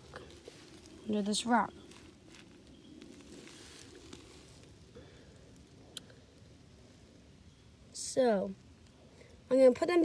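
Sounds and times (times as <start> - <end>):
faint rustling: 0.0 - 5.8.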